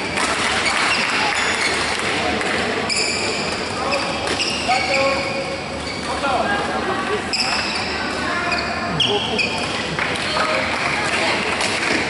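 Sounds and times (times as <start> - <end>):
many voices echoing in a hall: 0.0 - 12.0
shoes squeaking on floor: 0.6 - 2.0, 2.9 - 6.3, 7.3 - 9.8.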